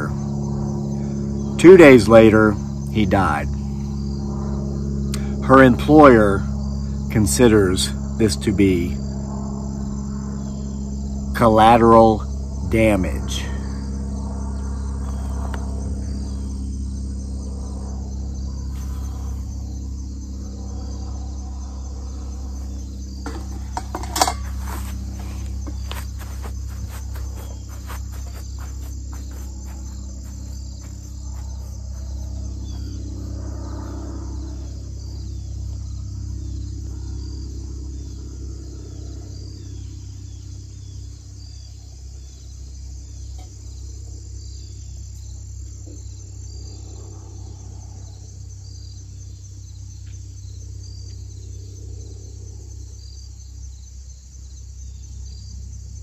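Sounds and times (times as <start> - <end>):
steady low rumble: 0.0 - 11.4, 12.2 - 42.2
crickets trilling: 0.0 - 56.0.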